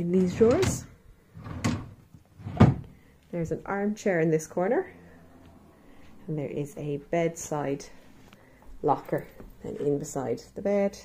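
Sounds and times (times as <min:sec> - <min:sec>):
drawer knocking shut: 0:01.4 - 0:02.8.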